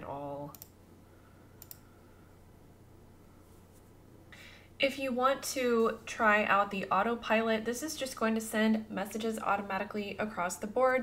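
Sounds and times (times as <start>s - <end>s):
computer mouse click: 0.5s - 0.8s, 1.6s - 1.9s.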